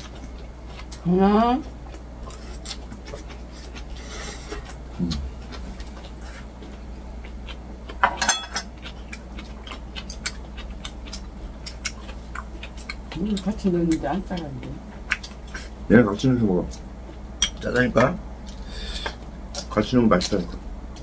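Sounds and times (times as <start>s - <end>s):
person chewing: 0.0s - 15.9s, 16.6s - 21.0s
steady low hum: 0.0s - 21.0s.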